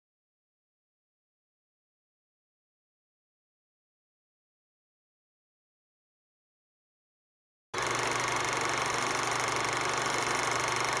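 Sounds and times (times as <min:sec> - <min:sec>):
film projector clatter: 0:07.8 - 0:11.0.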